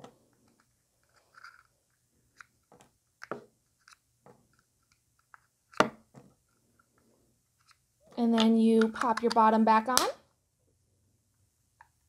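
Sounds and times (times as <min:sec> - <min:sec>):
small plastic clicks: 0:07.6 - 0:10.1.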